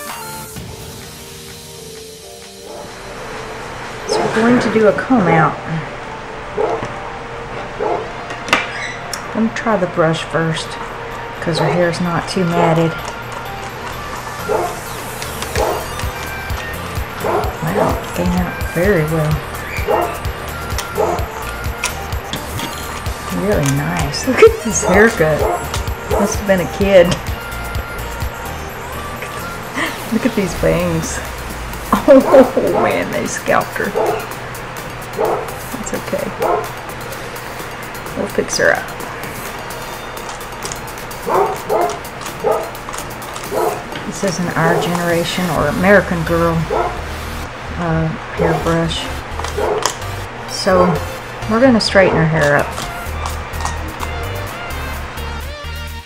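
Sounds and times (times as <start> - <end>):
dog barking: 6.6 - 6.9, 7.8 - 8.1, 14.4 - 14.9, 15.5 - 16.1, 17.2 - 18.2, 19.7 - 21.6, 24.4 - 26.5, 33.8 - 34.4, 35.1 - 35.7, 36.4 - 36.8, 41.2 - 42.8, 43.4 - 43.9, 44.6 - 45.2, 46.6 - 47.1, 48.4 - 48.8, 49.4 - 50.0
dog whining: 12.5 - 30.1, 33.9 - 34.4, 39.7 - 45.3.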